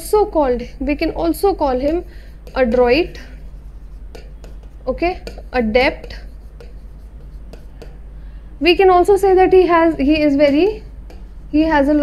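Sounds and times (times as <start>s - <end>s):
steady low hum: 0.0s - 12.0s
pen tapping and scratching screen: 1.4s - 8.0s, 9.8s - 11.4s.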